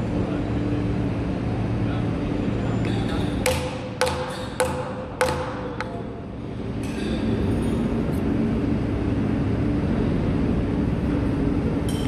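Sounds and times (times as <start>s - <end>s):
steady low hum: 0.0s - 12.0s
mallet knocking wooden plug: 3.4s - 6.0s.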